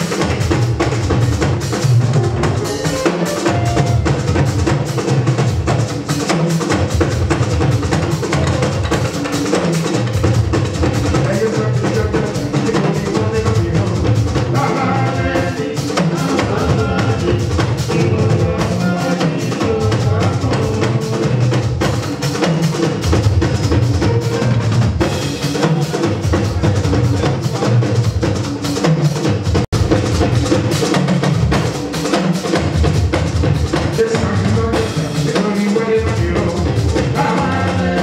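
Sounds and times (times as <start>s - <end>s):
drums and percussion: 0.0s - 38.0s
live band music: 0.0s - 38.0s.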